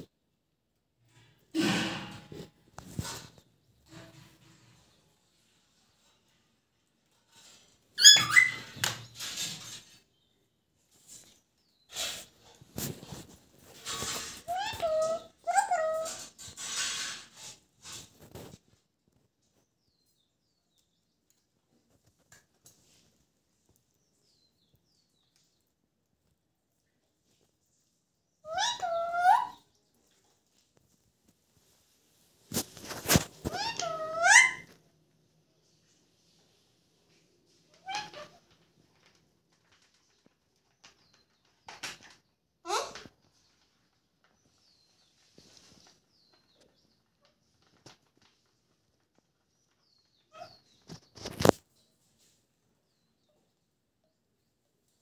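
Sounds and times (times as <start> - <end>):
bird rustling and scuffling: 2.0 - 6.5, 7.1 - 19.7, 30.0 - 34.8, 35.6 - 42.3, 43.2 - 52.6
parakeet squawk: 8.0 - 8.7, 28.5 - 29.6, 33.5 - 34.7, 37.8 - 38.4.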